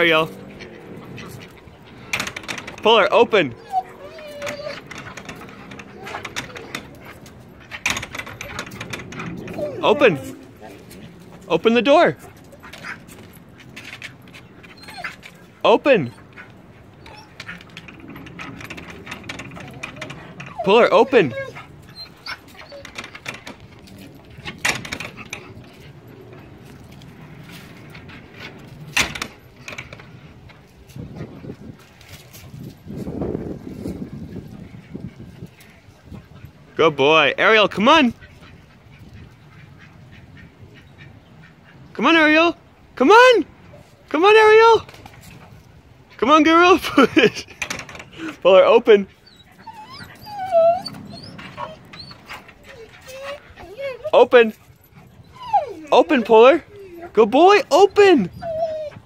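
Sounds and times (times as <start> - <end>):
gate rattling and knocking: 0.1 - 15.3, 17.0 - 30.6, 46.8 - 48.3
dog whining: 3.4 - 11.2, 14.4 - 26.4, 49.1 - 59.0.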